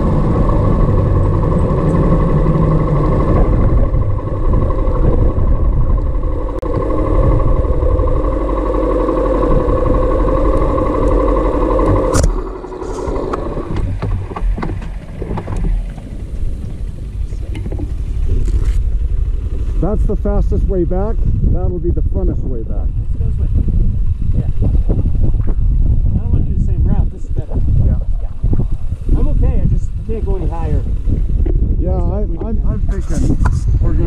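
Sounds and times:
small motorcycle engine running: 0.0 - 34.0.

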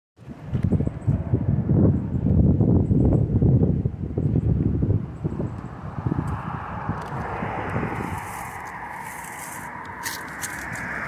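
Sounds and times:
car tyre noise on road: 0.2 - 11.0
wind buffeting microphone: 0.2 - 11.0.

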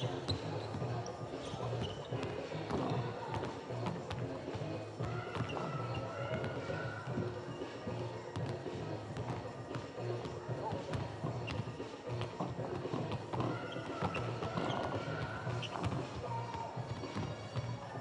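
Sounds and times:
music over loudspeakers in hall: 0.0 - 18.0
basketball bouncing: 8.3 - 17.7.

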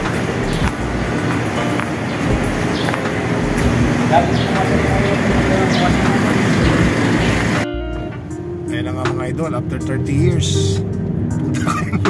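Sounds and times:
background music with held tone: 0.0 - 12.0
city bustle: 0.0 - 12.0
street traffic: 0.0 - 12.0.

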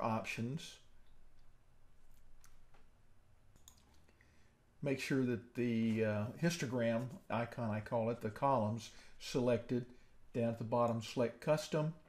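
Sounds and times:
low room hum: 0.0 - 12.0
computer mouse clicks: 3.5 - 4.1.

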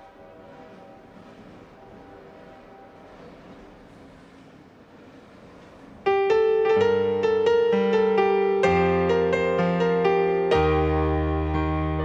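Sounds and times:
faint background hiss: 0.0 - 12.0
piano playing: 6.0 - 12.0.

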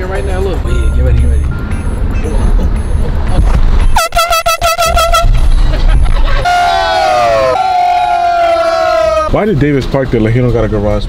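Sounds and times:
low car cabin rumble: 0.0 - 9.4
air horn toots and blasts: 3.9 - 5.6, 6.3 - 8.0.

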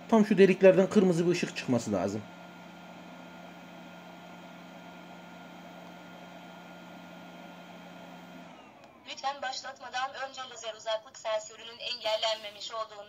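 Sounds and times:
motors winding down: 0.0 - 9.4
robot vacuum humming: 0.0 - 9.5.

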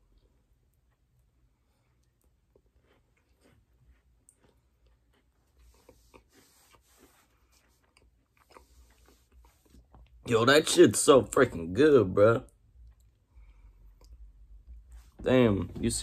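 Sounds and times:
chewing crunchy pastry: 0.0 - 11.1, 12.4 - 15.0.

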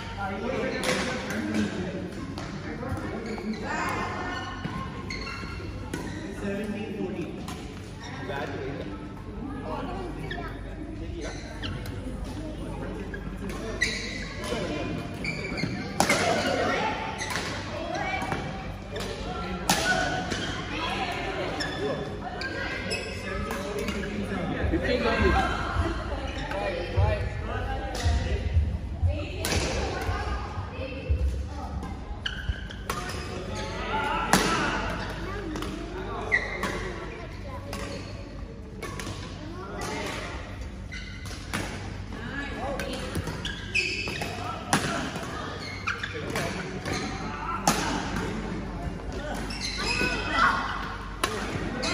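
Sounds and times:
voices in a hall: 0.0 - 51.9.

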